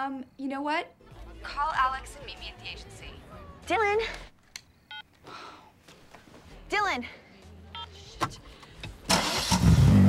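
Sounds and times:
woman shouting: 1.5s - 4.1s
phone beep: 4.8s - 5.1s.

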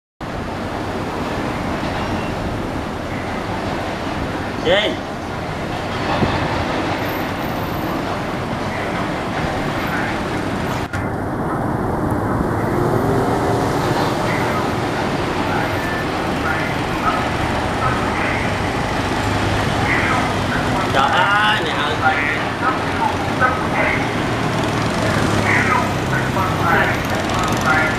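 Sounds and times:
city street traffic rumble: 0.2s - 27.9s
motorbike engines passing: 0.5s - 27.9s
people talking: 4.6s - 5.0s, 9.9s - 10.3s, 13.8s - 18.8s, 19.6s - 27.9s.

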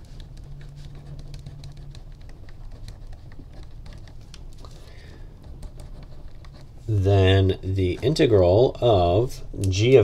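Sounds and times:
pen scratching on paper: 0.1s - 4.7s, 5.3s - 7.0s, 7.9s - 8.3s.

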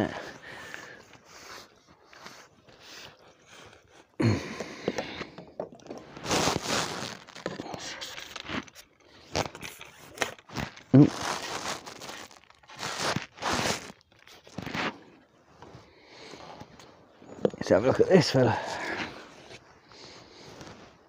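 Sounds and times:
fishing tackle rustling: 0.0s - 21.0s.

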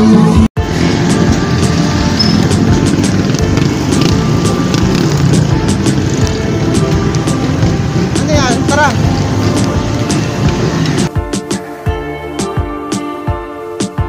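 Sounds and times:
motorcycles passing: 0.0s - 11.1s
street traffic: 0.0s - 11.2s
music: 0.0s - 14.0s
voices: 2.2s - 10.6s.

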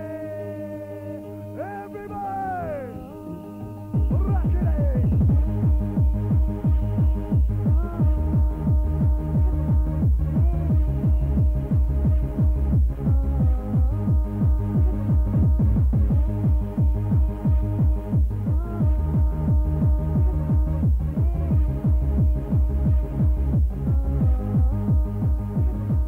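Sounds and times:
pulsing bass line: 0.0s - 26.0s.

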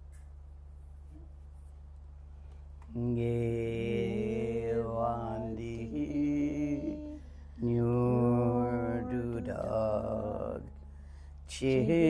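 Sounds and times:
low room hum: 0.0s - 12.0s
person chanting prayer: 2.9s - 10.8s, 11.5s - 12.0s.

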